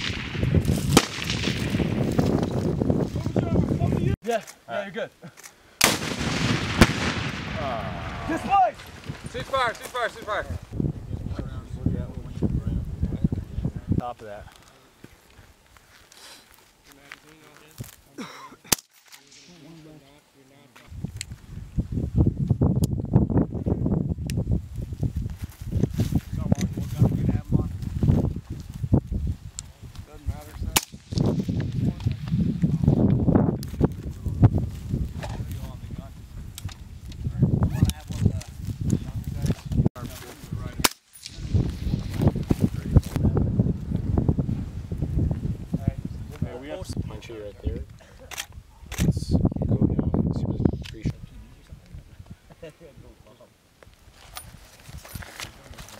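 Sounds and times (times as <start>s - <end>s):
sharp gunshots: 0.0s - 2.3s, 5.8s - 9.8s, 30.7s - 31.5s.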